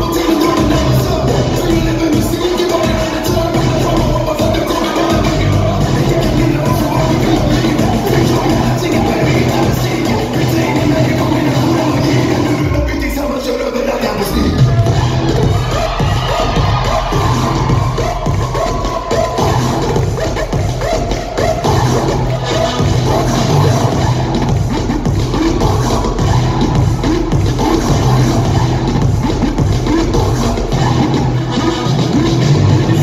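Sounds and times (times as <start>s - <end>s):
dance music with heavy bass beat: 0.0s - 33.0s.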